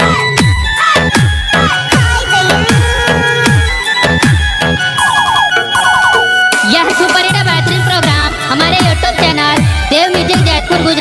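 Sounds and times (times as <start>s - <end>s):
held high tone: 0.0s - 7.2s
wavering pitched sound: 1.6s - 7.0s
rising siren-like chirps: 2.8s - 6.6s.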